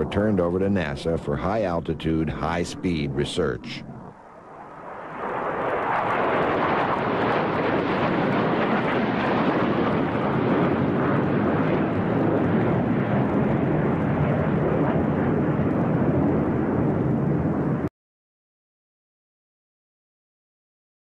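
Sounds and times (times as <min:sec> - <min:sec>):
jet aircraft roar: 0:00.0 - 0:17.9.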